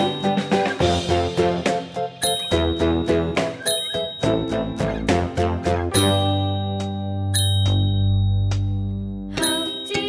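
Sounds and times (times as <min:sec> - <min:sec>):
bell-like chimes: 0:00.0 - 0:00.9, 0:02.2 - 0:05.2, 0:06.0 - 0:10.0
quick music notes: 0:00.0 - 0:08.8.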